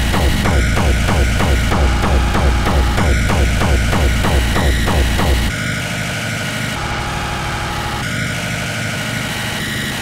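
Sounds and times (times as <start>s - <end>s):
fast pounding kick drum beat: 0.0s - 5.5s
steady high synth tones: 0.0s - 5.8s
rough buzzing low drone: 0.0s - 9.5s.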